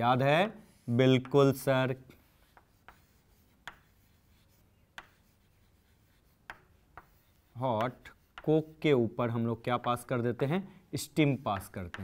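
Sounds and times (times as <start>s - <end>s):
chalk tapping and scratching: 0.2s - 10.3s, 11.2s - 12.0s.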